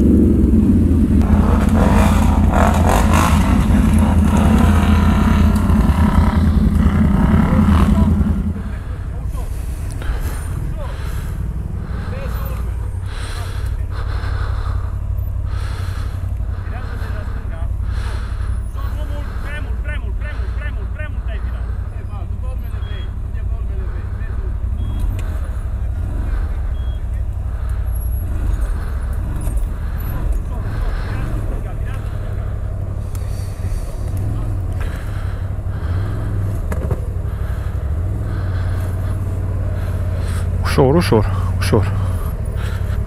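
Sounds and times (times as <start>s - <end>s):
atv engine revving: 0.0s - 43.0s.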